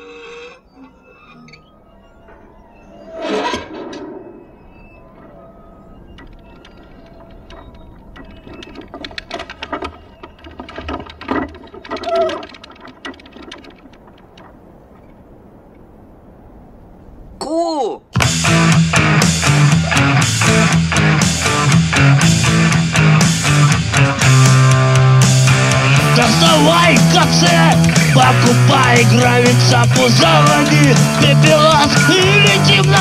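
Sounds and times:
steady tones: 0:00.0 - 0:17.4, 0:18.1 - 0:33.0
mechanical clattering and whirring: 0:00.6 - 0:15.4
rapid clicks and rattles: 0:05.2 - 0:15.2.

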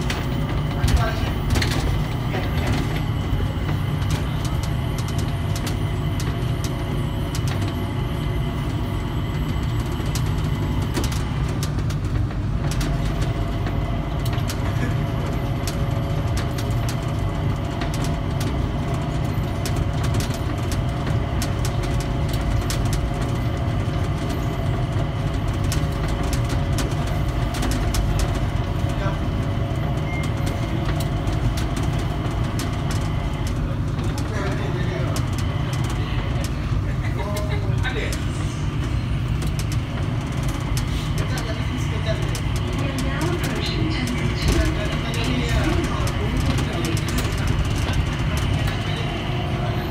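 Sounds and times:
low rumble of people mover: 0:00.0 - 0:49.9
small clicks and rattles: 0:09.4 - 0:29.0, 0:29.7 - 0:49.2.

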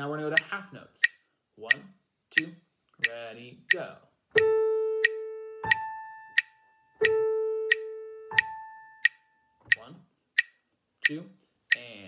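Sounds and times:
metronome clicking: 0:00.3 - 0:11.9.

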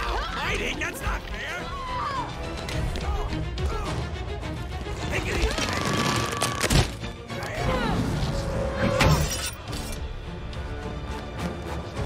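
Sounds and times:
orchestral music: 0:00.0 - 0:12.0.

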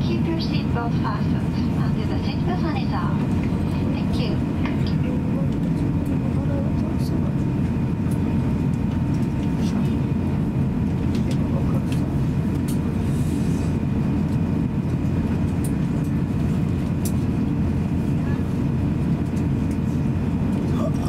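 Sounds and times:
airplane cabin rumble: 0:00.0 - 0:21.0.

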